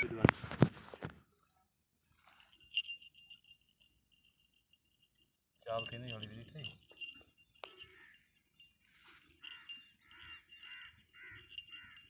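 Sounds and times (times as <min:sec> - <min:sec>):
small bell tinkling: 0:02.2 - 0:12.0.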